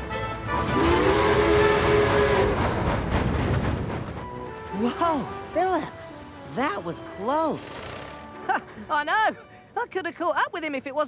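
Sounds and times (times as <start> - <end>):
background music: 0.0 - 11.0
steam train rushing past: 0.4 - 8.3
deep two-note train whistle: 0.5 - 2.9.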